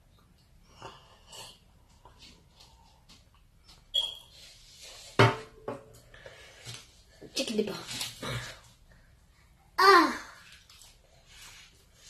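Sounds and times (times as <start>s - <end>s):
cup clunking on a tabletop: 5.2s - 5.9s.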